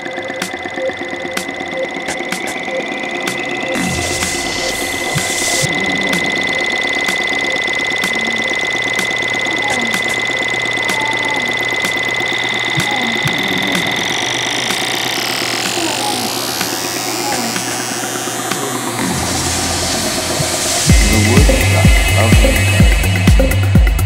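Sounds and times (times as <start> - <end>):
light ticking percussion: 0.0 - 19.0
held high synth tone: 0.0 - 23.9
noise sweep: 0.0 - 24.0
heavy kick drum: 18.5 - 24.0.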